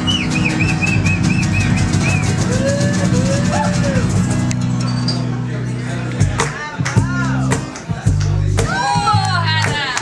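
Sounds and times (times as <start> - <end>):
fast percussion beat: 0.0 - 4.6, 6.2 - 10.0
strummed strings: 0.0 - 9.4.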